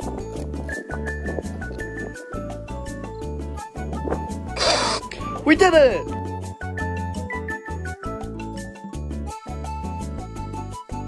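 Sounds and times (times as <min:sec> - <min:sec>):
music with bass and ticking beat: 0:00.0 - 0:11.0
short burst of hissing noise: 0:04.6 - 0:05.2.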